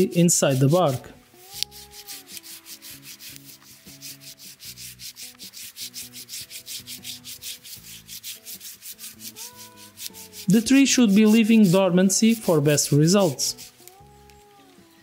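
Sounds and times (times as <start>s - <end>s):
hand saw cutting wood: 0.0s - 14.0s.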